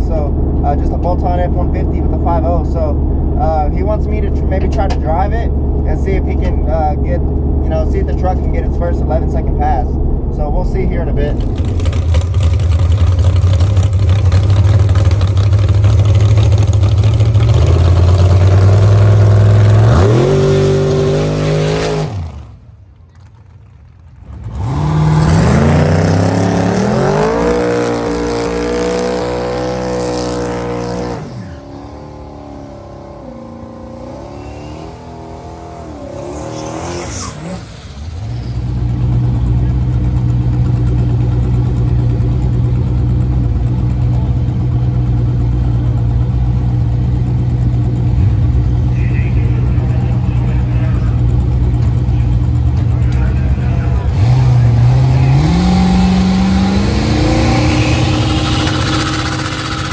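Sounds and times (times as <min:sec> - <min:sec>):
second car engine idling: 0:00.0 - 0:18.6, 0:37.9 - 0:55.2, 0:57.6 - 0:59.9
drag car engine idling: 0:00.0 - 0:19.8, 0:37.9 - 0:55.3, 0:57.0 - 0:59.9
car engine accelerating: 0:00.0 - 0:59.9.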